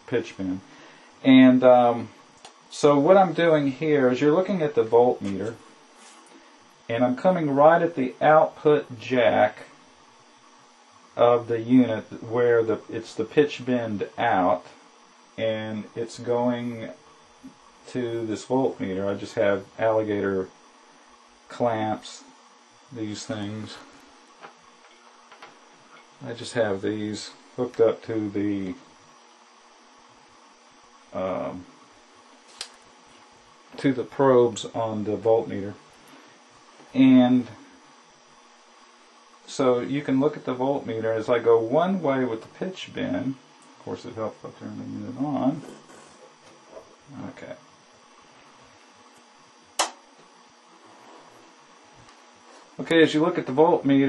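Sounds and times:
faint hum: 0.0s - 54.0s
faint steady hiss: 0.0s - 54.0s.

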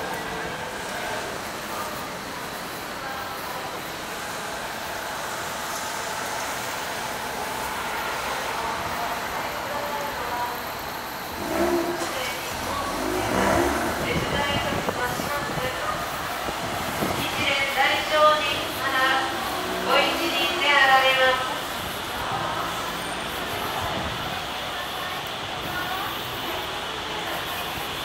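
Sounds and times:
people's voices: 0.0s - 28.0s
traffic hum: 0.0s - 28.0s.

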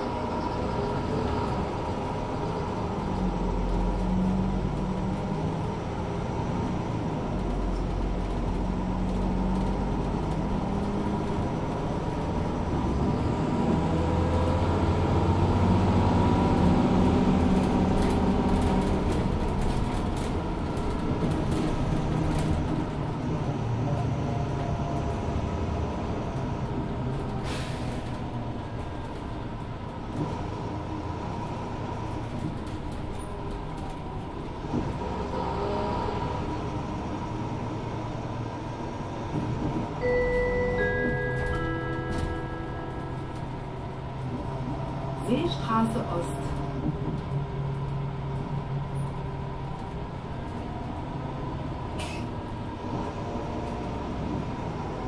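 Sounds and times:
bus diesel engine: 0.0s - 55.0s.

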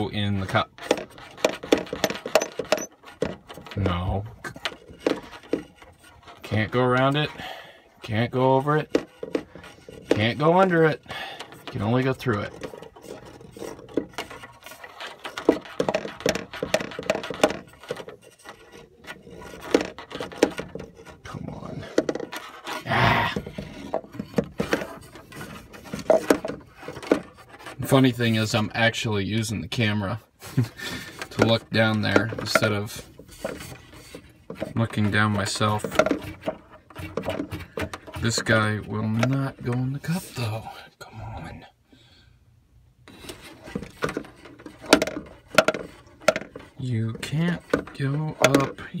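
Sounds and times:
scraping and knocking on wood: 0.0s - 40.6s, 43.1s - 49.0s.

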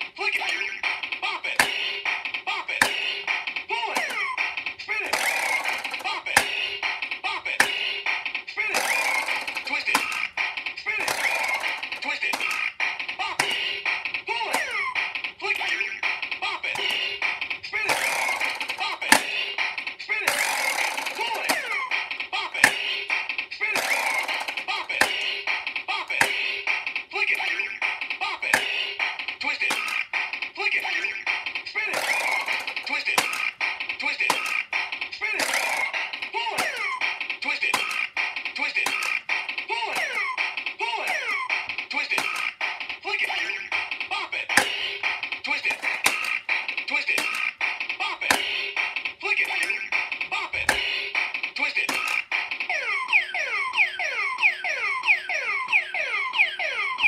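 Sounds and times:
electronic beat loop: 0.0s - 57.0s
sharp plastic clicks: 0.4s - 52.7s.

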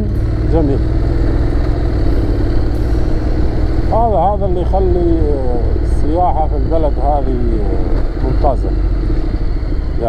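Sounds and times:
motorcycle engine running: 0.0s - 10.0s
riding noise rumble: 0.0s - 10.0s.

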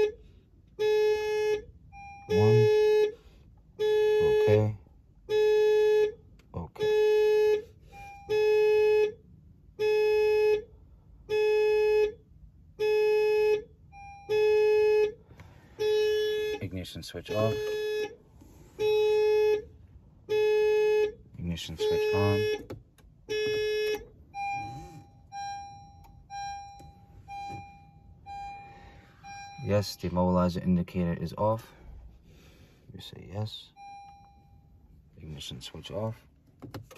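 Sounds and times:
car warning chime beeps: 0.8s - 3.2s, 3.8s - 31.5s, 33.0s - 36.2s.

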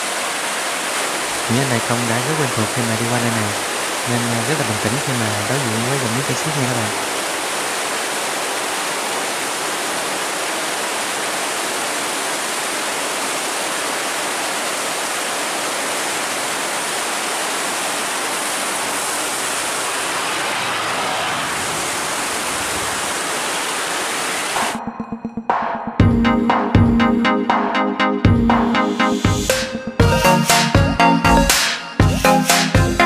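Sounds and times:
water rushing through sluice: 0.0s - 24.8s
electronic music with beat: 24.7s - 33.0s.

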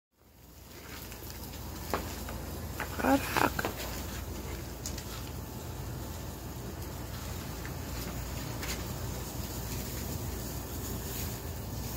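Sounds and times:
hiss: 8.7s - 11.9s.

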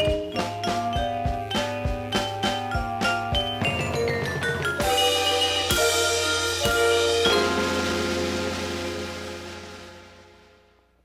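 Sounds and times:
mallet percussion and bells ringing: 0.0s - 9.3s.

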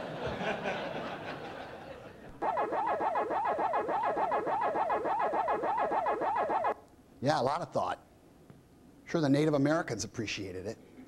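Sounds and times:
electronic chomping tone: 2.4s - 6.8s.

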